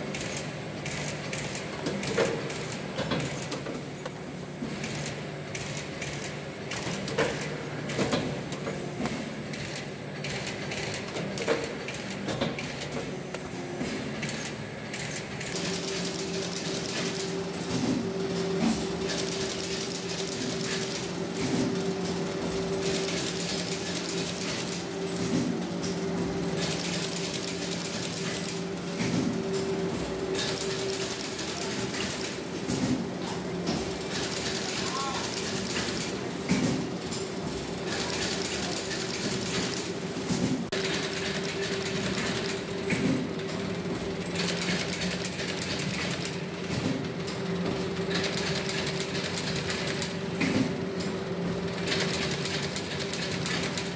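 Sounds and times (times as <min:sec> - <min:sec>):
binding machine humming: 0:00.0 - 0:53.9.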